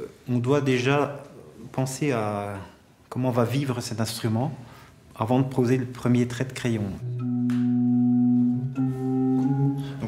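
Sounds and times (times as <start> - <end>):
chamber organ held notes: 7.0 - 10.0.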